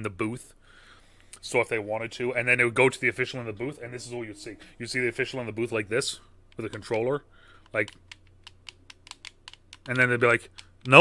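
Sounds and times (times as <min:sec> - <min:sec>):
game controller buttons clicking: 0:06.5 - 0:07.0, 0:07.6 - 0:11.0.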